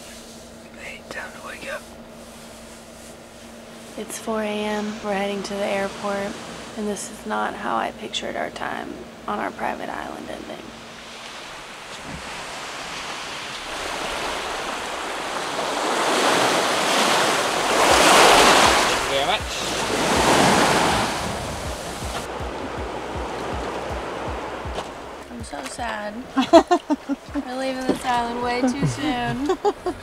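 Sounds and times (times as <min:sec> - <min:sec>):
waves washing onto shore: 0:02.2 - 0:07.6, 0:10.6 - 0:30.0
soft low thumps: 0:17.7 - 0:30.0.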